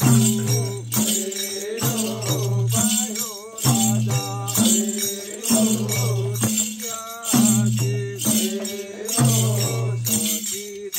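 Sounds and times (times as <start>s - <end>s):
hand drum: 0.0s - 4.9s
small brass cymbals jingling: 0.0s - 10.9s
voices singing folk song: 0.0s - 10.9s.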